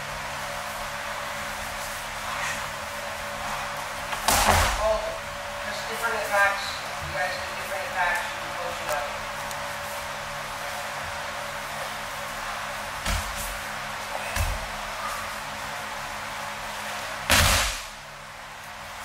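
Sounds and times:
bodies landing on mats: 4.1s - 5.0s, 13.0s - 13.7s, 17.3s - 17.9s
loud impact: 17.3s - 18.0s.

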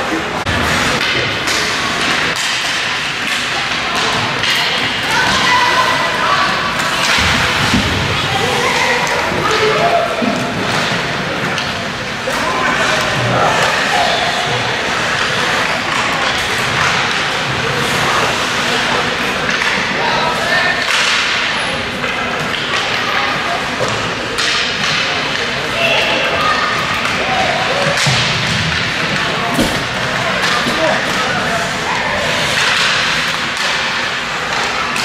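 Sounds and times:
puck and sticks hitting boards: 0.4s - 35.0s.

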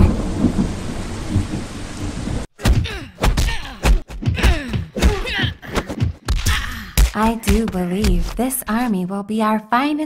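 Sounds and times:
heavy rain: 0.0s - 2.5s
low rumbling thunder: 0.0s - 2.5s.

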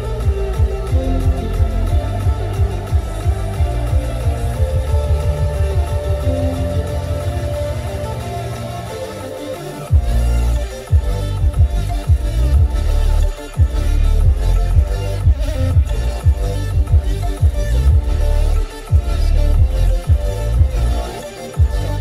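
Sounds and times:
bass-heavy music with kick drums: 0.0s - 22.0s.

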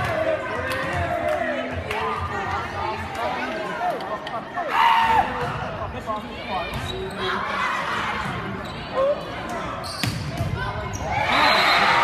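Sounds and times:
crowd cheering: 11.1s - 12.0s.

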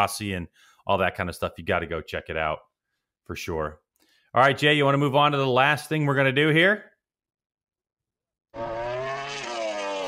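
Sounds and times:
motorcycle engine revving: 8.6s - 10.0s.

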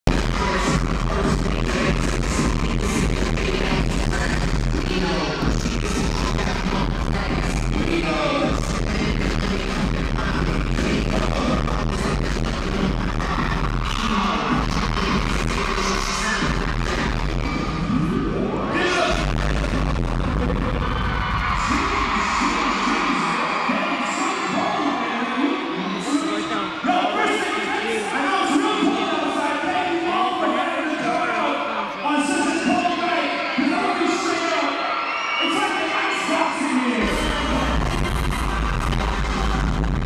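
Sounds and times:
heavy bass beat: 0.0s - 18.2s, 19.0s - 22.9s, 37.0s - 40.0s
loud live pop music: 0.0s - 40.0s.

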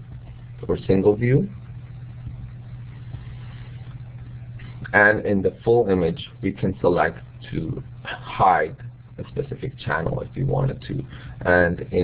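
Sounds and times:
faint hiss: 0.0s - 12.0s
low hum: 0.0s - 12.0s.

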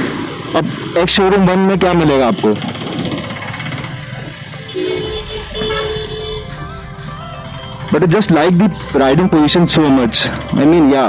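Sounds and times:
motorcycle engine running: 0.0s - 11.0s
street traffic: 0.0s - 11.0s
held horn tones: 4.5s - 10.1s.

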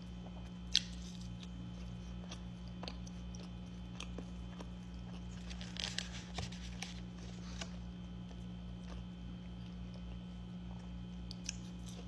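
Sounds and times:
low electrical hum: 0.0s - 12.0s
person chewing food: 0.0s - 12.0s.

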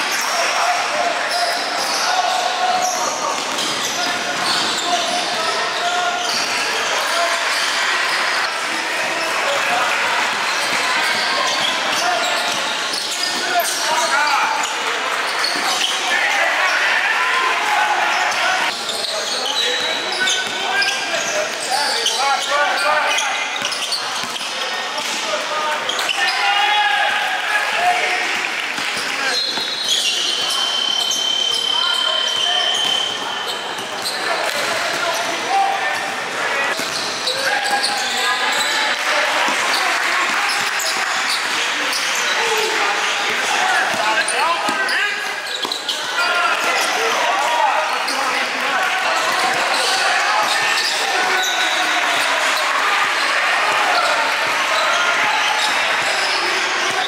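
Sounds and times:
players and spectators talking: 0.0s - 57.0s.

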